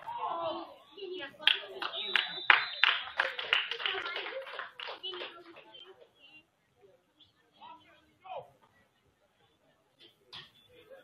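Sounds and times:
voices: 0.0s - 11.0s
hands clapping: 1.4s - 6.0s.

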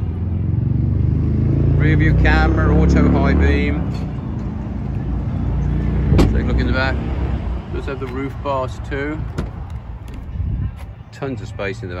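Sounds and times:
wind rumble on microphone: 9.2s - 11.0s.

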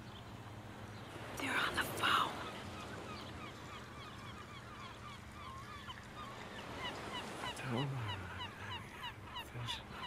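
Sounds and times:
faint chorus of bird calls: 0.0s - 10.0s.

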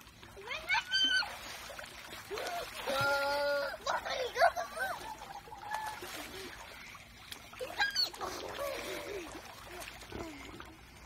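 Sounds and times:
water splashing: 0.0s - 11.0s
children squealing and shouting: 0.4s - 1.5s, 7.6s - 9.8s.

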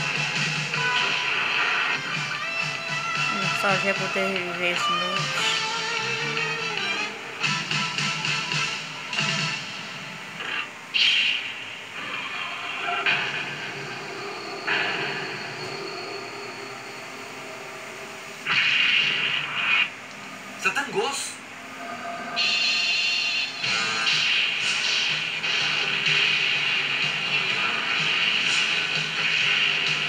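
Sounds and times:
background music from television: 0.0s - 30.0s.

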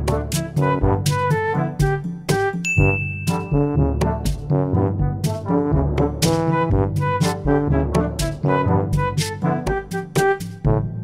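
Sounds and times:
struck pitched notes music: 0.0s - 10.8s
bell ding ringing: 2.6s - 4.0s.

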